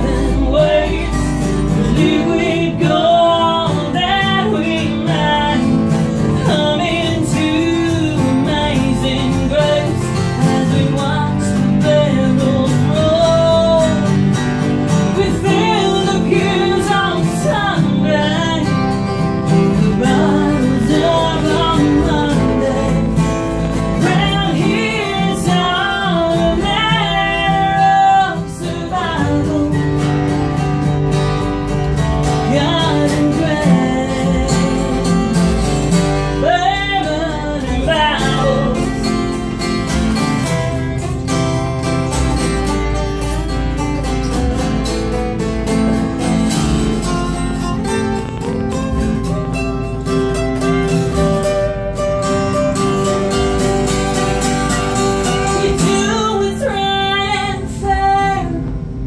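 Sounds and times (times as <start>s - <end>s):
woman singing: 0.0s - 30.9s, 31.9s - 41.4s, 53.3s - 59.0s
acoustic guitars playing: 0.0s - 59.0s.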